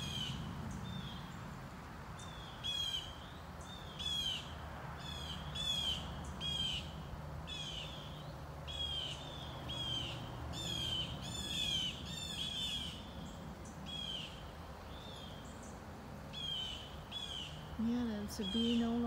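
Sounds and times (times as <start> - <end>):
birds harsh calls: 0.0 - 1.4, 2.2 - 19.0.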